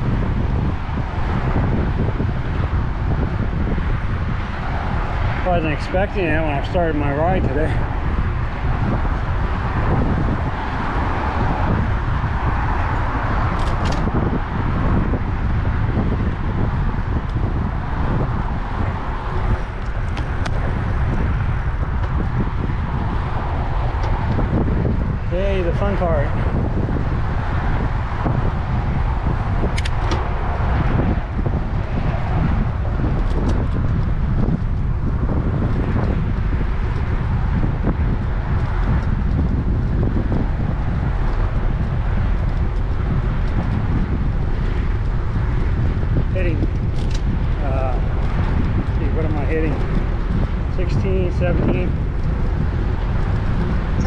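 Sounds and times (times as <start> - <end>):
road traffic noise: 0.0 - 54.0
wind rushing over microphone: 0.0 - 54.0.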